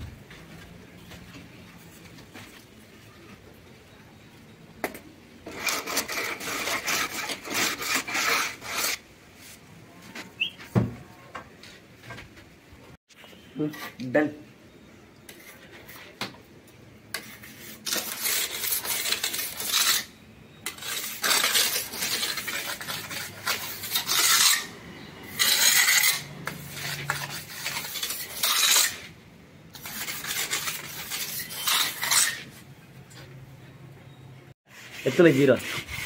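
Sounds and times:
trowel scraping cement mortar: 0:05.4 - 0:09.0, 0:17.1 - 0:32.6, 0:34.7 - 0:36.0.

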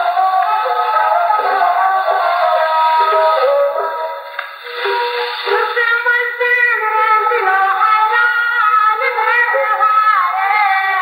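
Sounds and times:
musical accompaniment: 0:00.0 - 0:08.8
woman singing folk song: 0:05.4 - 0:11.0.

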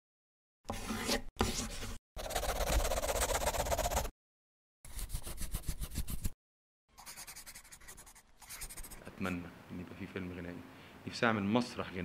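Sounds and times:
marker pen scribbling: 0:01.4 - 0:04.1, 0:04.9 - 0:06.4, 0:07.0 - 0:09.1.

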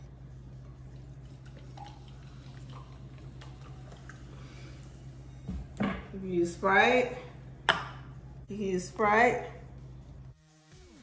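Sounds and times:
steady low hum: 0:00.0 - 0:10.4
soda fizzing: 0:01.2 - 0:05.0.

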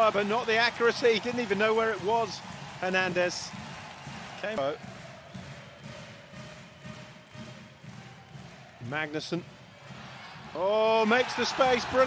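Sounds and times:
indoor crowd noise: 0:00.0 - 0:12.0.

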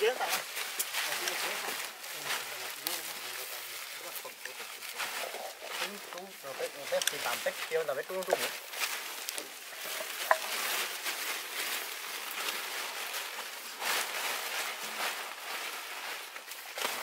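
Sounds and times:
plastic tarpaulin rustling: 0:00.0 - 0:17.0.

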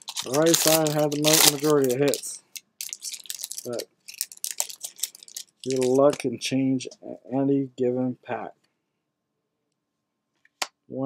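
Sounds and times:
foil wrapper and cards crackling: 0:00.0 - 0:06.2
person speaking: 0:00.0 - 0:08.6.

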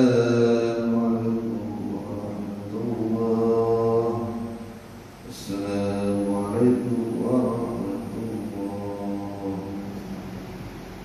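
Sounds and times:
man chanting: 0:00.0 - 0:10.6.

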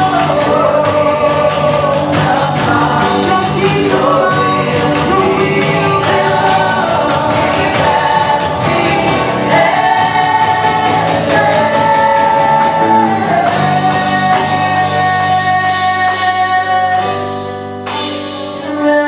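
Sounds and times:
congregation singing along: 0:00.0 - 0:17.4
woman singing into microphone: 0:00.0 - 0:17.6, 0:18.3 - 0:19.0
acoustic guitar: 0:00.0 - 0:19.0
keyboard: 0:00.0 - 0:19.0.

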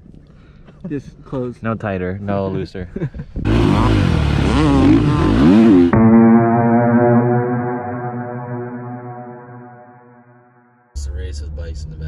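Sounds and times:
dirt bike engine revving: 0:03.4 - 0:06.4
held guitar chord: 0:05.8 - 0:10.4.

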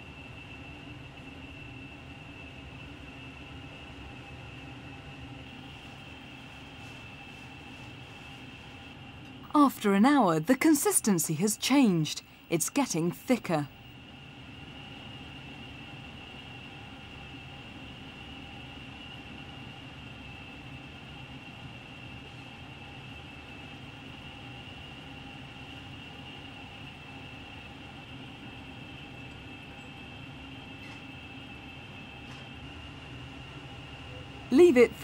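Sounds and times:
mechanical hum: 0:00.0 - 0:35.0.

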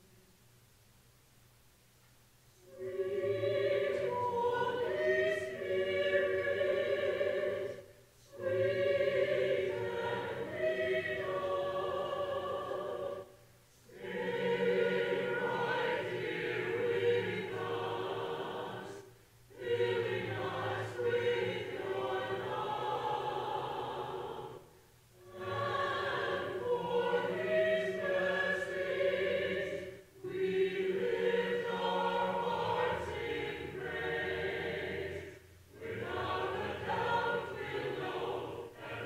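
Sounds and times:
church choir singing: 0:02.6 - 0:39.0.

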